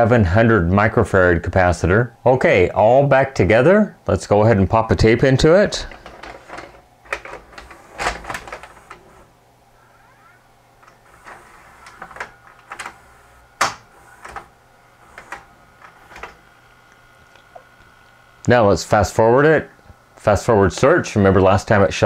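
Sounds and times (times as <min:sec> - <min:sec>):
cassette deck mechanism clicking: 0:10.8 - 0:17.9.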